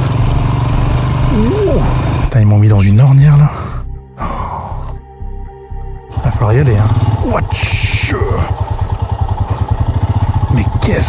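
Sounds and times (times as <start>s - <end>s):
single-cylinder motorcycle engine: 0.0s - 2.6s, 6.1s - 11.0s.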